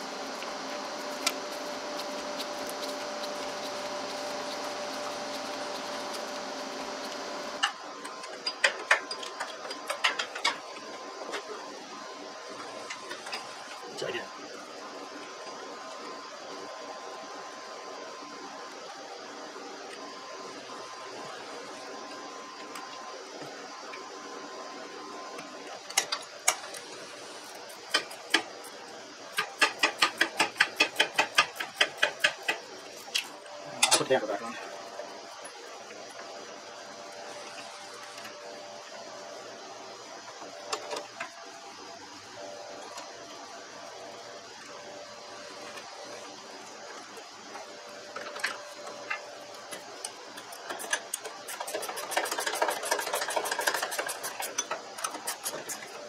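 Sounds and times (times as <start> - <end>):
steady hum: 0.0 - 56.0.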